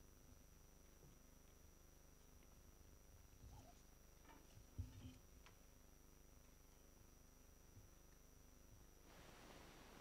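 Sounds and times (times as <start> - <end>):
faint knocks and rustles: 2.2 - 5.8.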